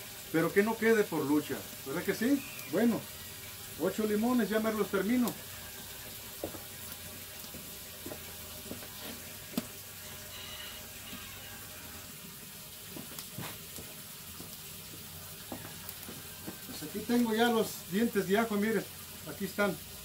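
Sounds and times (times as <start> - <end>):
faint steady hiss: 0.0 - 20.0
faint high whistle: 2.2 - 2.9, 10.3 - 11.6.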